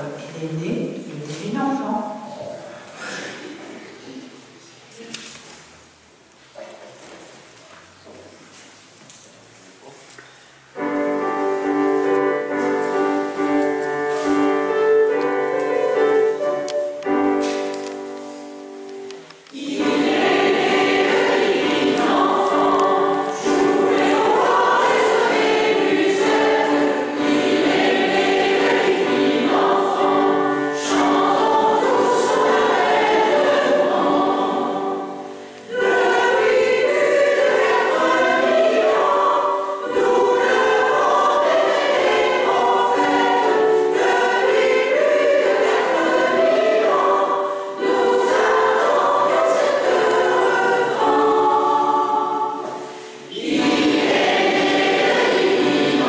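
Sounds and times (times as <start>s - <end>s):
mixed choir singing: 10.7s - 17.8s, 19.5s - 56.0s.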